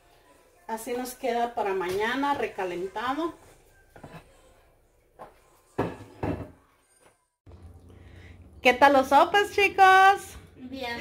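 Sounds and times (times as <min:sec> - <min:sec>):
kitchen knocks: 0:05.8 - 0:06.6.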